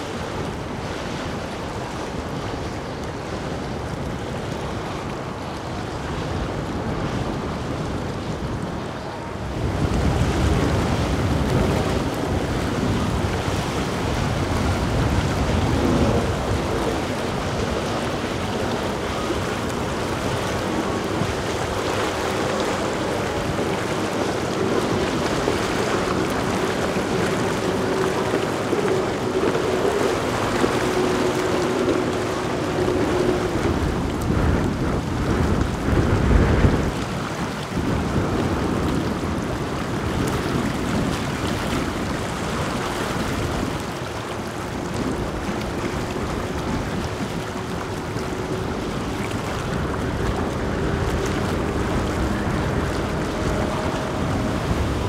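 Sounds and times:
low boat engine drone: 0:00.0 - 0:55.0
wash of boat wakes: 0:00.0 - 0:55.0
wind rumble on microphone: 0:00.0 - 0:55.0.

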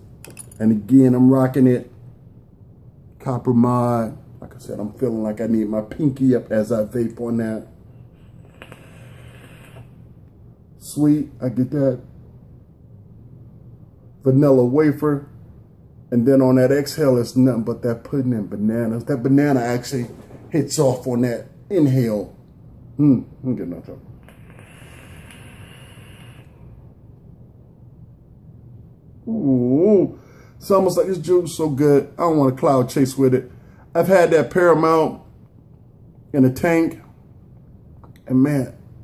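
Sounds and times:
airy hiss of vaping: 0:08.1 - 0:10.0, 0:24.2 - 0:26.7
faint vape click: 0:08.4 - 0:10.0, 0:24.2 - 0:26.6.

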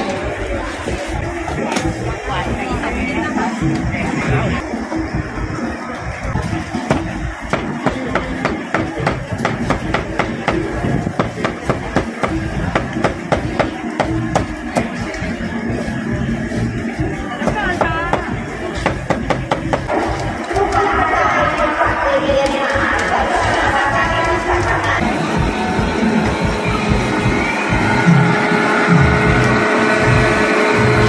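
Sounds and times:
background music: 0:00.0 - 0:31.0
crowd chatter: 0:00.0 - 0:31.0.

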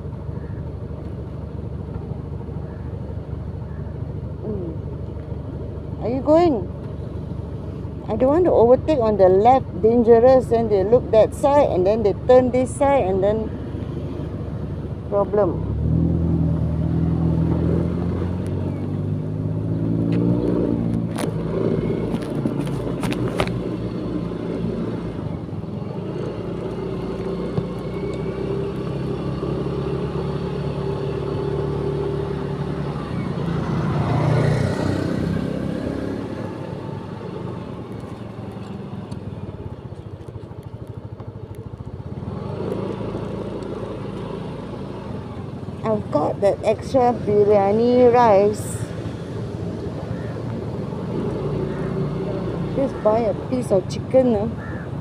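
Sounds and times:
vehicle engine running: 0:00.0 - 0:55.0
vehicle passing: 0:11.2 - 0:38.5.

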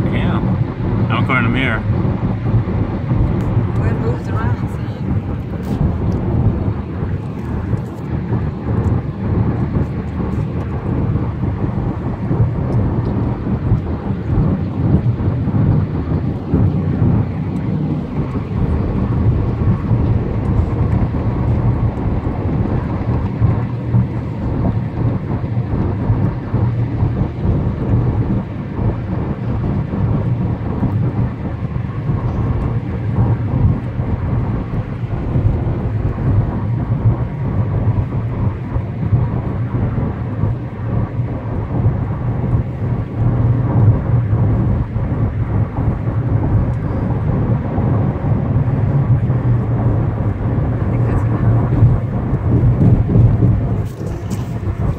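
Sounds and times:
car cabin road and engine rumble: 0:00.0 - 0:54.9.

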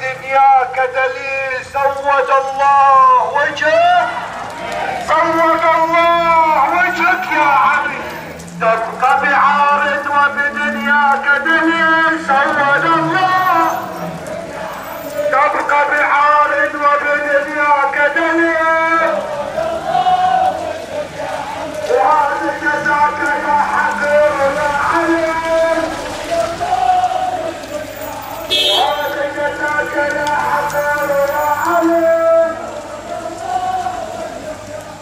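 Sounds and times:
person chanting: 0:00.0 - 0:35.0.

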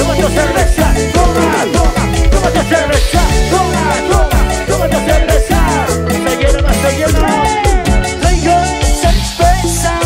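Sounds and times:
drum kit dance beat: 0:00.0 - 0:10.0
keyboard: 0:00.0 - 0:10.0
strong bass notes: 0:00.0 - 0:10.0.

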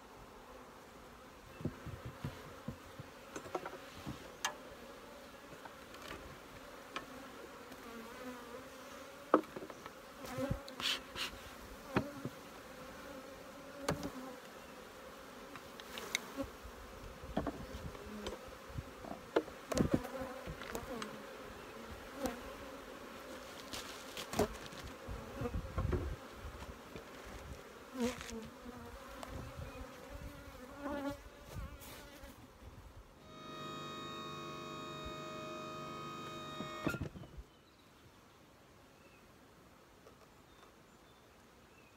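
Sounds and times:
honeybees buzzing: 0:33.2 - 0:37.1.

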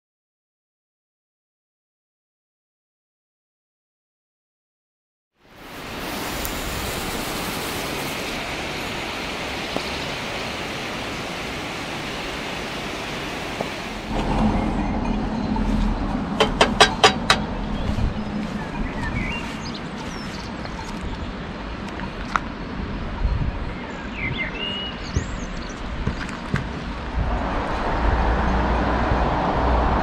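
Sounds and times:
waterfall rushing: 0:05.4 - 0:20.8
birds chirping: 0:06.3 - 0:27.0
low rumble: 0:13.9 - 0:19.7.

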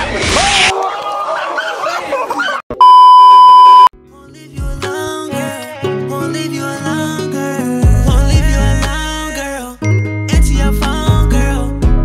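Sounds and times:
high-pitched censor bleep: 0:02.8 - 0:03.9.

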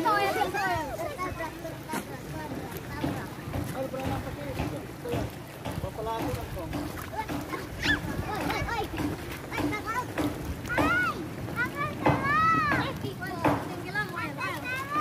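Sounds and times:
children chattering and calling out: 0:00.0 - 0:05.7, 0:06.7 - 0:15.0
wind rumble on microphone: 0:05.6 - 0:13.2.

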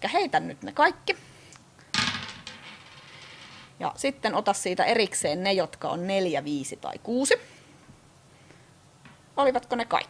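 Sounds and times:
dice clattering on tabletop: 0:02.0 - 0:03.8.

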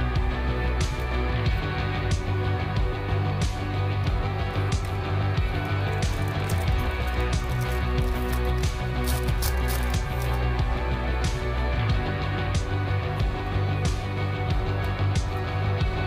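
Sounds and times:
guitar music: 0:00.0 - 0:16.0
foil pack crinkling and tearing: 0:05.9 - 0:10.4.

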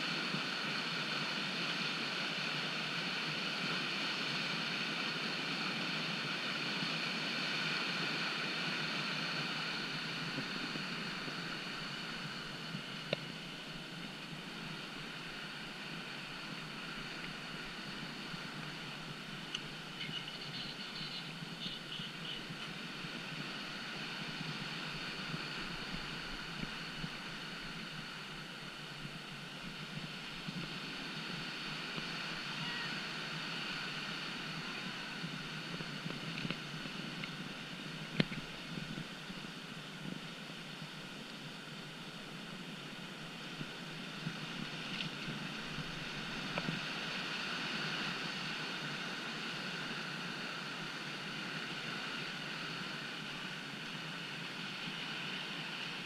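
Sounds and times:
whitewater rapids rushing: 0:00.0 - 0:56.0.

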